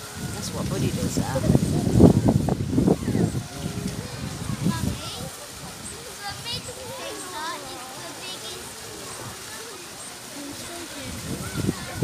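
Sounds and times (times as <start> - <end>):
distant voices of people: 0.0 - 12.0
trickle of running water: 0.0 - 12.0.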